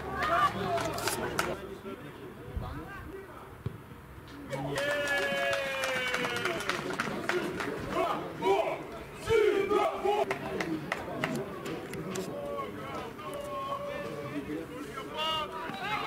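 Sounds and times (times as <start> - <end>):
players shouting and cheering: 0.0 - 1.6, 4.5 - 11.8, 12.4 - 16.0.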